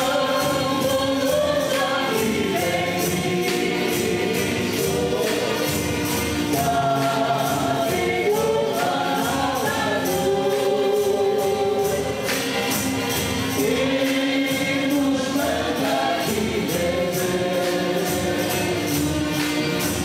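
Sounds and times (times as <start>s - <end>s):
acoustic guitar: 0.0s - 20.0s
group singing a hymn: 0.0s - 20.0s
tambourines shaking: 0.0s - 20.0s.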